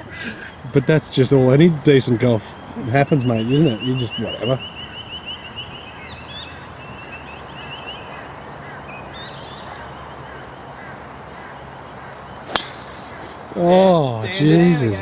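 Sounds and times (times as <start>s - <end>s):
birds chirping: 0.0s - 15.0s
outdoor background: 0.0s - 15.0s
golf ball struck: 12.5s - 13.1s.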